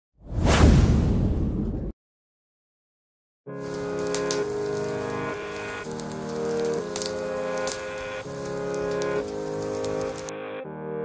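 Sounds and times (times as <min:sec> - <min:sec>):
cinematic whoosh: 0:00.2 - 0:01.9.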